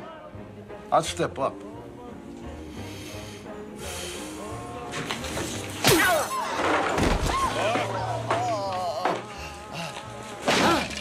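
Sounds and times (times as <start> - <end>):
wooden chair crash: 5.8 - 9.3.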